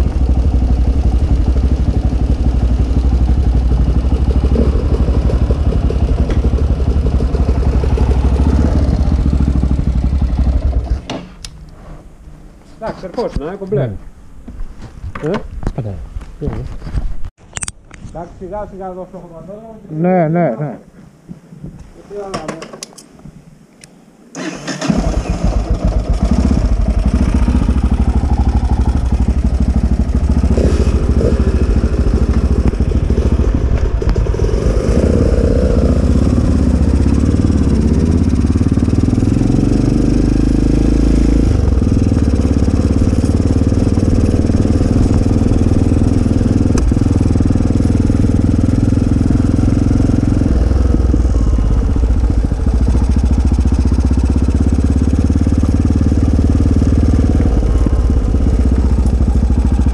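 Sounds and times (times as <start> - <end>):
motorcycle engine: 0.0 - 11.8, 24.4 - 59.9.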